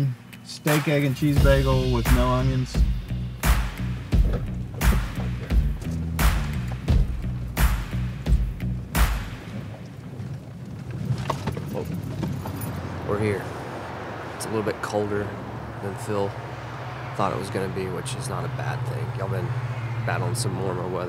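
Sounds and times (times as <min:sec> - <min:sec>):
vehicle driving rumble: 0:00.0 - 0:21.0
music with drum beat and bass: 0:00.6 - 0:09.6.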